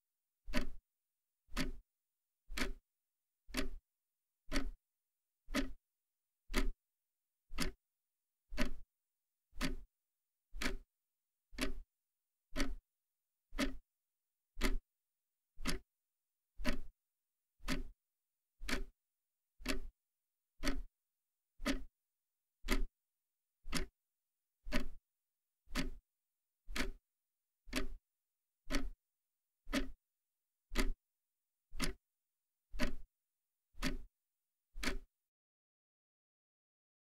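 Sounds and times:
clock ticking: 0:00.5 - 0:00.8, 0:01.5 - 0:01.8, 0:02.5 - 0:02.8, 0:03.5 - 0:03.8, 0:04.5 - 0:04.8, 0:05.5 - 0:05.8, 0:06.5 - 0:06.8, 0:07.6 - 0:07.8, 0:08.6 - 0:08.8, 0:09.6 - 0:09.9, 0:10.6 - 0:10.9, 0:11.6 - 0:11.8, 0:12.6 - 0:12.8, 0:13.6 - 0:13.8, 0:14.6 - 0:14.8, 0:15.6 - 0:15.8, 0:16.6 - 0:16.9, 0:17.6 - 0:17.9, 0:18.6 - 0:18.9, 0:19.6 - 0:19.9, 0:20.6 - 0:20.9, 0:21.6 - 0:21.9, 0:22.7 - 0:22.9, 0:23.7 - 0:23.9, 0:24.7 - 0:25.0, 0:25.7 - 0:26.0, 0:26.7 - 0:27.0, 0:27.7 - 0:28.0, 0:28.7 - 0:29.0, 0:29.7 - 0:30.0, 0:30.7 - 0:31.0, 0:31.8 - 0:32.0, 0:32.8 - 0:33.1, 0:33.8 - 0:34.1, 0:34.8 - 0:35.1.

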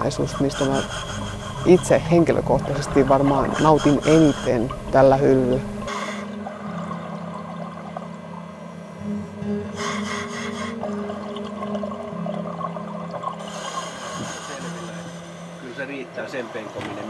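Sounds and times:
exhaled bubbles hissing: 0:00.0 - 0:15.8
slow music of low tones: 0:00.0 - 0:17.0.

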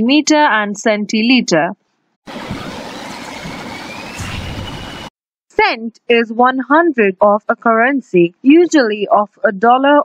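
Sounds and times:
faint rising tone: 0:02.3 - 0:05.1.

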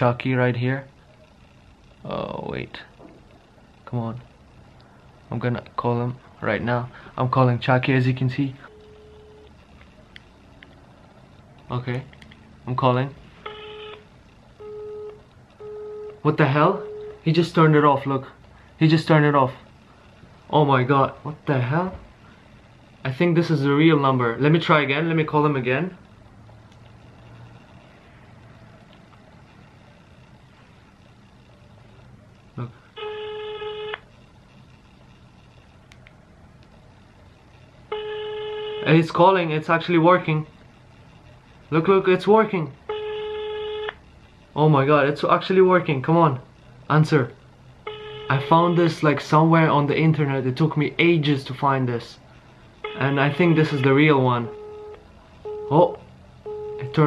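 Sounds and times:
phone busy tone beeps: 0:08.6 - 0:09.5, 0:13.4 - 0:14.0, 0:14.6 - 0:17.2, 0:33.0 - 0:34.0, 0:37.9 - 0:38.9, 0:42.9 - 0:43.9, 0:47.9 - 0:48.8, 0:52.8 - 0:53.8, 0:54.4 - 0:57.0.

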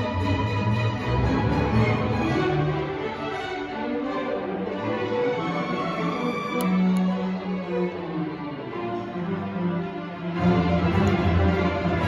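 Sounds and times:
string orchestra bowed notes: 0:00.0 - 0:12.0.

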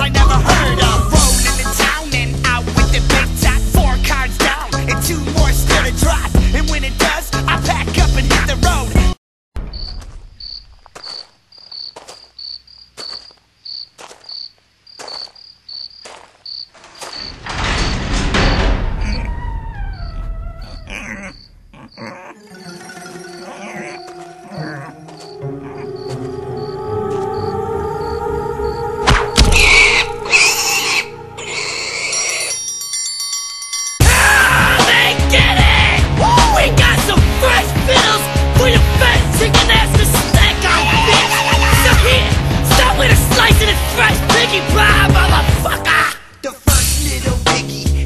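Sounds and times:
crickets chirping: 0:09.6 - 0:17.4, 0:18.5 - 0:32.8
high electronic beeping tones: 0:22.4 - 0:30.3.

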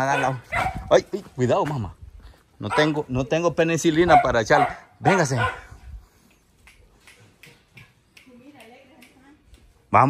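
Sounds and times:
faint footsteps: 0:00.2 - 0:03.0.

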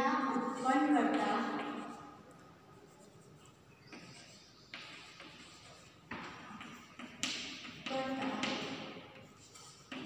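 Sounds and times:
chalk scraping on chalkboard: 0:00.0 - 0:10.0.

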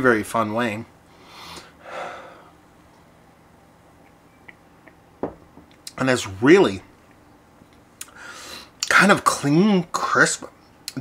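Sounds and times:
glass set down on wooden bar: 0:05.2 - 0:05.7.

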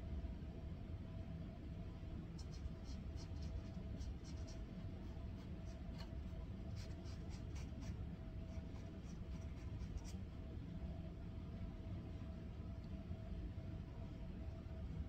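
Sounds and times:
low background hum: 0:00.0 - 0:15.0
paintbrush scratching on canvas: 0:02.4 - 0:10.3.

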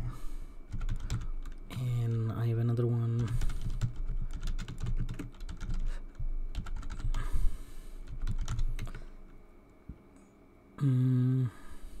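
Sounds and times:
typing on keyboard: 0:00.7 - 0:02.3, 0:03.2 - 0:07.2, 0:08.1 - 0:09.0.

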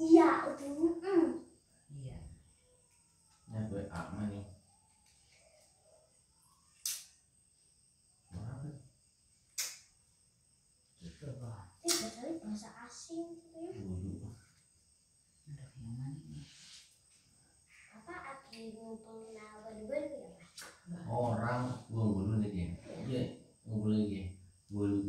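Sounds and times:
quiet voices: 0:08.3 - 0:08.7, 0:20.6 - 0:25.0.

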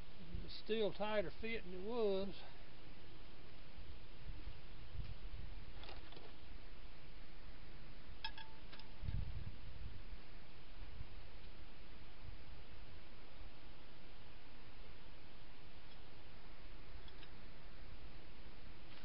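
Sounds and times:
background hiss: 0:00.0 - 0:19.0.

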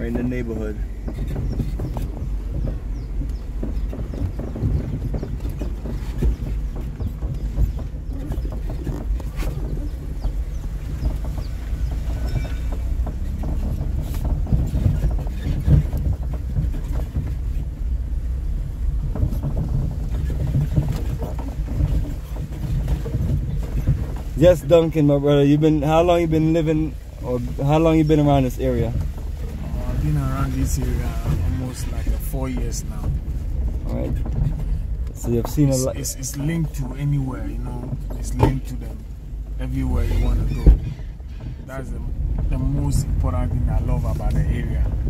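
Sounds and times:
car engine and tyre rumble: 0:00.0 - 0:45.0
knocks from bumps: 0:00.0 - 0:45.0.

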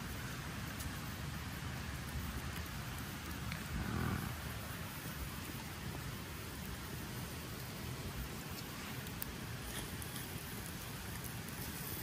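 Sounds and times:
campfire crackling: 0:00.0 - 0:12.0.

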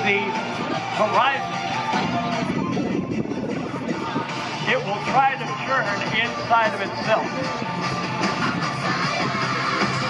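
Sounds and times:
background music over loudspeakers: 0:00.0 - 0:10.0.

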